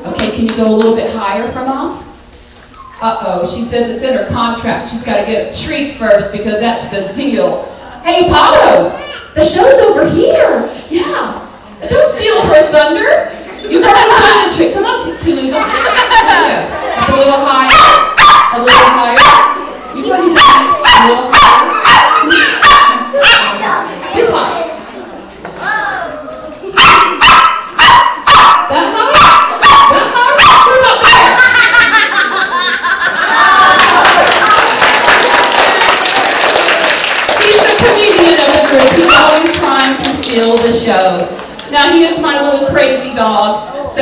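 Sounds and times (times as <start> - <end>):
small dog yipping: 2.7 - 3.0
audience applauding: 33.4 - 40.6.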